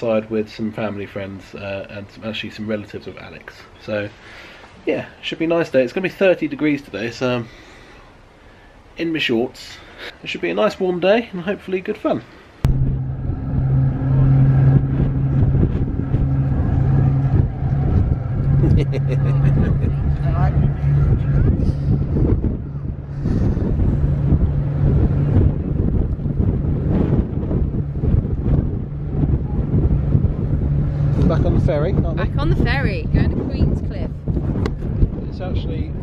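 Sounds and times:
ship engines droning: 0:12.6 - 0:36.0
wind on microphone: 0:12.6 - 0:36.0
person laughing: 0:18.6 - 0:20.2
people talking: 0:18.6 - 0:22.0, 0:31.2 - 0:34.1, 0:35.2 - 0:36.0.

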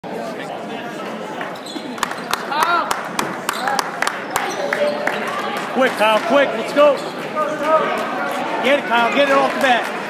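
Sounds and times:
crowd chatter: 0:00.0 - 0:10.0
shoe squeaks: 0:01.4 - 0:02.4, 0:03.5 - 0:05.1, 0:06.7 - 0:07.6.

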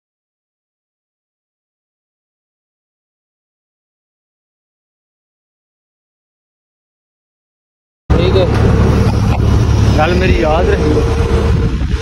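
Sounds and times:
loader engine rumbling: 0:08.1 - 0:12.0.

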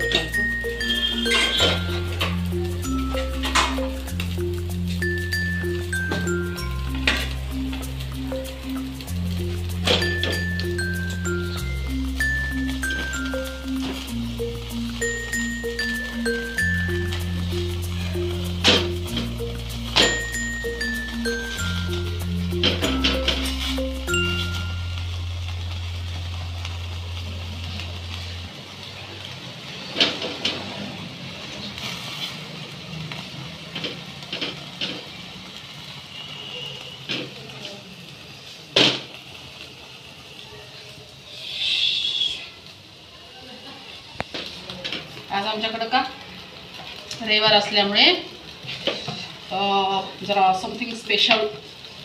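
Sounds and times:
woman speaking: 0:45.3 - 0:46.2, 0:49.5 - 0:51.6.

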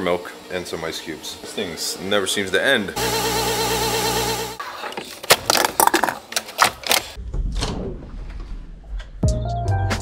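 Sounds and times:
ice cubes clinking into cup: 0:05.3 - 0:07.0.

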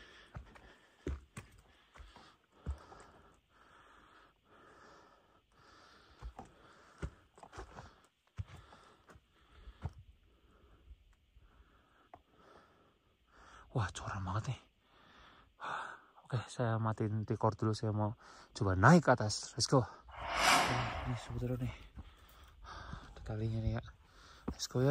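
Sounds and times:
person breathing hard: 0:20.1 - 0:21.5.

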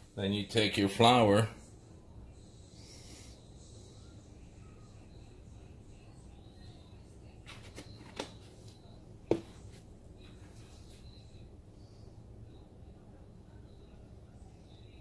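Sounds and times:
low steady room hum: 0:00.0 - 0:15.0
dishes knocking on countertop: 0:09.3 - 0:09.6.

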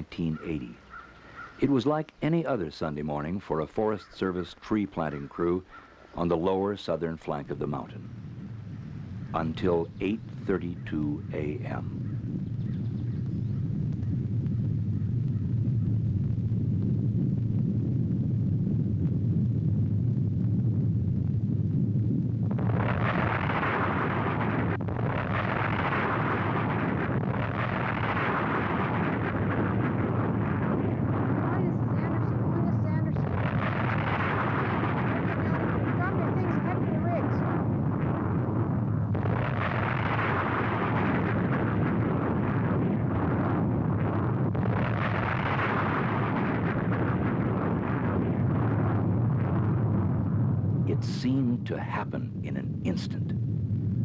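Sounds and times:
volcanic eruption rumble: 0:00.0 - 0:54.0.

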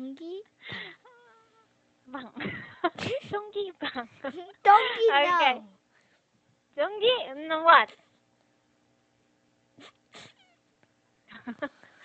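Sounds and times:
laughter over a video call: 0:11.3 - 0:11.8.

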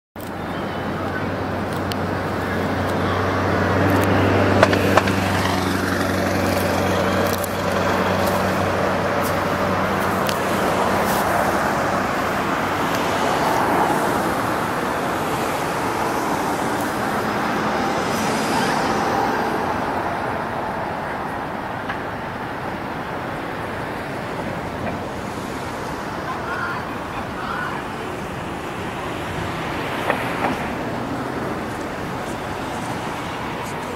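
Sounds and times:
road and traffic rush: 0:00.2 - 0:33.9
vehicle engine hum: 0:00.2 - 0:33.9.

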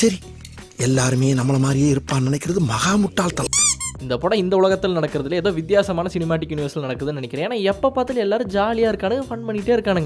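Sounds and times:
person speaking: 0:00.0 - 0:04.1
high-pitched squeaks: 0:03.4 - 0:04.0.

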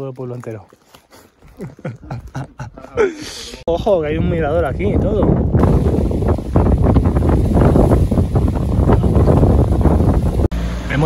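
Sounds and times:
wind buffeting microphone: 0:03.6 - 0:10.5.

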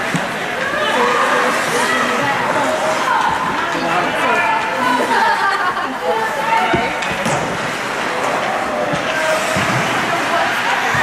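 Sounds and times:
spectators talking: 0:00.0 - 0:11.0
skates scraping on ice: 0:06.2 - 0:11.0.

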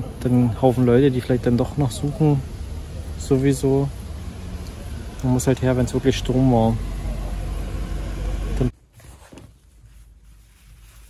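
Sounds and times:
car engine and road rumble: 0:00.0 - 0:08.8.

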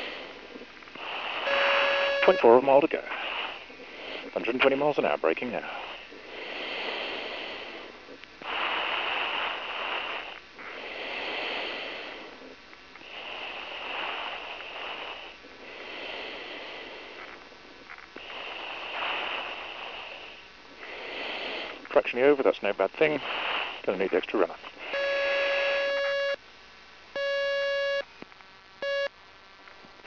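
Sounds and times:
slow breathing into microphone: 0:00.0 - 0:04.4, 0:05.6 - 0:21.9, 0:23.1 - 0:26.4.

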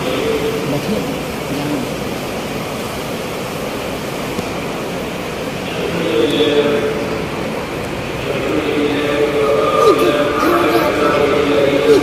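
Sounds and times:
rumbling background noise: 0:00.0 - 0:12.0
man singing into a microphone: 0:08.2 - 0:12.0.

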